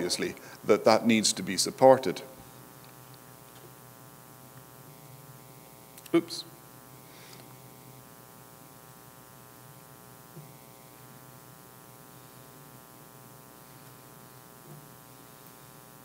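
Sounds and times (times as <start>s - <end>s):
electrical mains hum: 0.0s - 16.0s.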